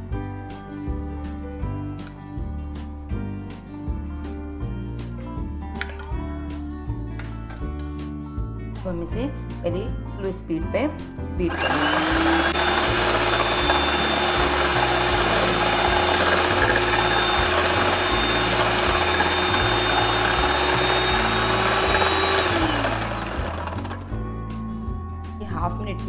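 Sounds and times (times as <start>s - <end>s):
beaters whipping in steel bowl: 11.5s - 24.1s
electric hand mixer whining: 11.5s - 24.2s.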